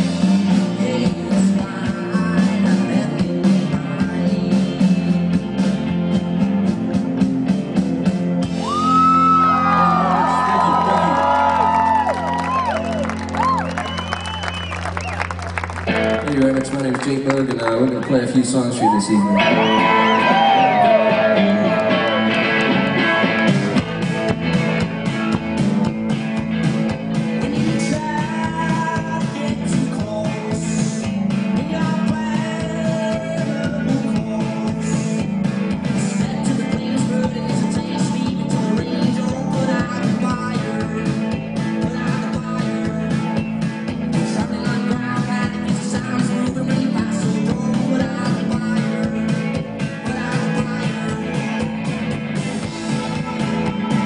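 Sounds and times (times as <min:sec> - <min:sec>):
bass guitar: 0:00.0 - 0:54.0
drums: 0:00.0 - 0:54.0
electric guitar: 0:00.0 - 0:54.0.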